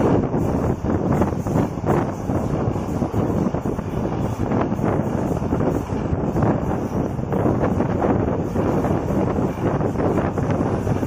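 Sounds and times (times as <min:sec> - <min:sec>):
train wheels on rails: 0:00.0 - 0:11.0
wind buffeting microphone: 0:00.0 - 0:11.0.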